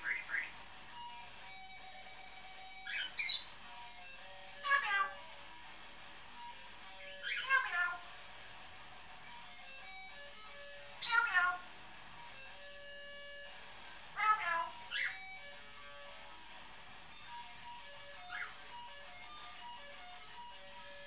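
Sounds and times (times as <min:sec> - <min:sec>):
faint electric guitar with effects: 0:00.0 - 0:21.0
parrot calls falling in pitch: 0:07.2 - 0:08.0, 0:14.2 - 0:15.2.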